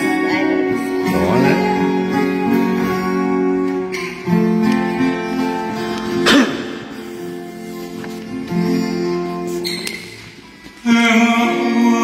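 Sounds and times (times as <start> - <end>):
acoustic guitar and ukulele strumming: 0.0 - 12.0.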